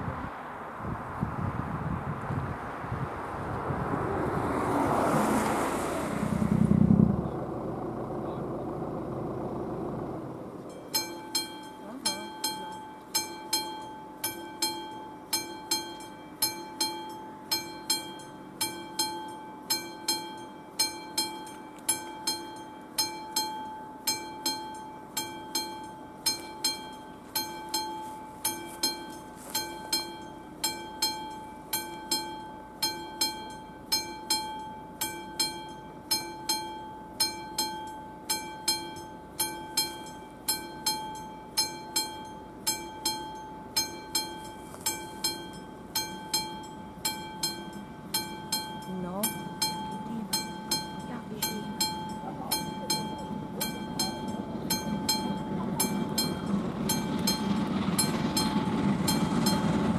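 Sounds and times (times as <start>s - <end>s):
car passing: 0.0s - 10.7s, 44.4s - 59.9s
level crossing warning bell: 8.7s - 59.9s.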